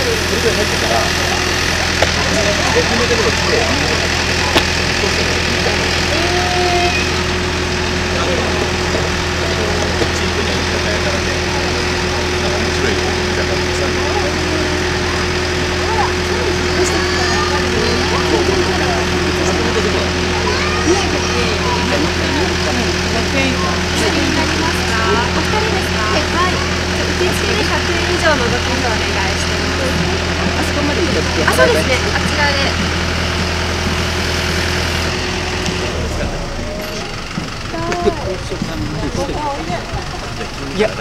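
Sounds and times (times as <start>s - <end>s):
diesel engine idling: 0.0s - 41.0s
people chattering: 0.0s - 41.0s.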